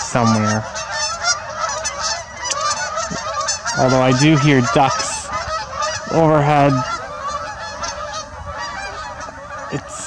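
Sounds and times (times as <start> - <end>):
waterfowl calling: 0.0 - 10.0.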